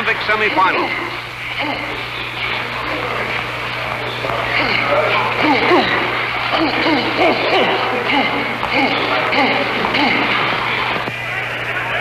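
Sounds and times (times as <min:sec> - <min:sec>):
indistinct overlapping voices: 0:00.0 - 0:12.0
steady low hum: 0:00.0 - 0:12.0.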